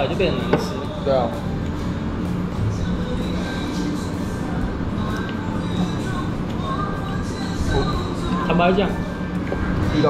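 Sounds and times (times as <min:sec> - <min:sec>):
machinery hum and rumble: 0:00.0 - 0:10.0.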